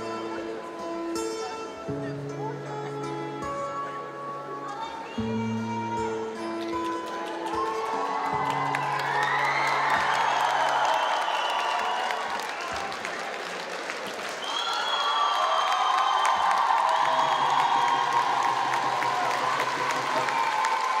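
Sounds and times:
audience applauding: 0:06.6 - 0:21.0
audience cheering: 0:07.4 - 0:21.0.

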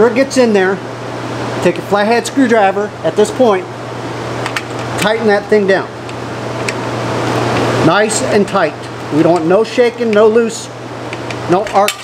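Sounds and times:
low constant hum: 0:00.0 - 0:12.0
steady hiss: 0:00.0 - 0:12.0.

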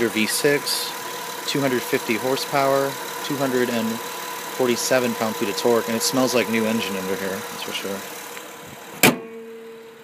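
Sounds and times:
car hood slammed shut: 0:09.0 - 0:09.5
short metallic ring: 0:09.0 - 0:10.0.

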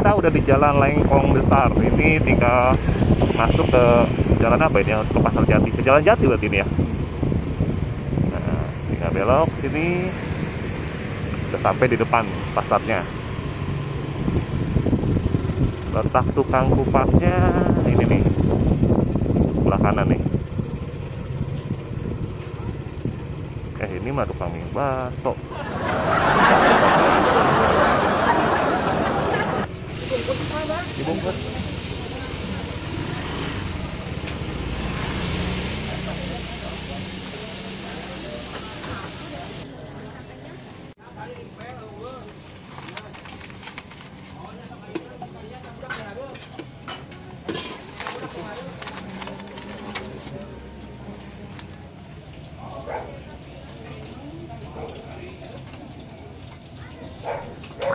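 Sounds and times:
road and wind noise: 0:00.0 - 0:57.9
wrapping paper rustling: 0:42.4 - 0:44.4, 0:47.8 - 0:50.4.

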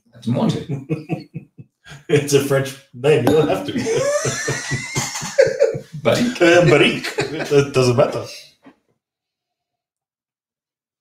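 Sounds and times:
men laughing: 0:00.5 - 0:02.5, 0:03.4 - 0:08.2.

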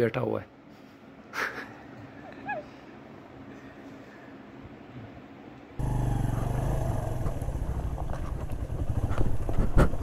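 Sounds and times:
motorcycle engine at low revs: 0:05.8 - 0:10.0
bike rattling over stones: 0:07.1 - 0:10.0.

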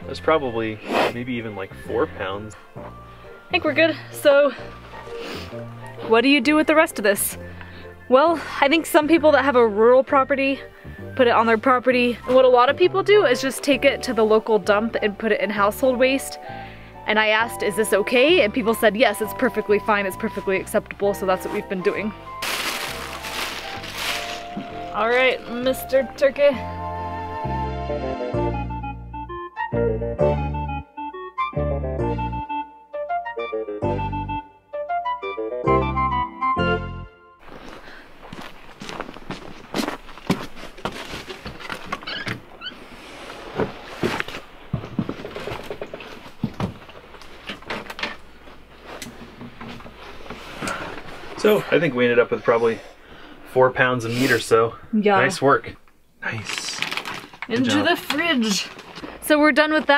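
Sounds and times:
soft background music: 0:00.0 - 0:37.7, 0:53.6 - 0:55.7, 0:57.5 - 0:58.6
footsteps: 0:20.3 - 0:25.9, 0:37.4 - 0:51.5
plastic bag rustling: 0:21.4 - 0:26.0, 0:37.4 - 0:51.7, 0:56.3 - 0:59.9
things being handled: 0:22.4 - 0:25.7, 0:39.8 - 0:51.5, 0:56.4 - 0:59.9.

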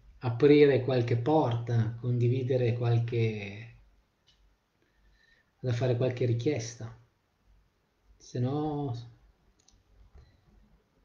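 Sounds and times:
faint clicks: 0:09.6 - 0:10.4.

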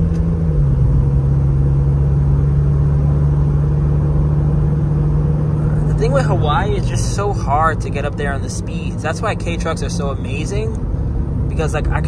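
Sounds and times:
diesel engine droning: 0:00.0 - 0:12.0
road noise: 0:00.0 - 0:12.0.

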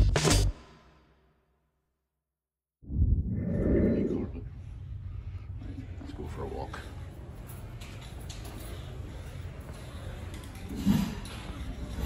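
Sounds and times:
steady low hum: 0:02.9 - 0:07.9.

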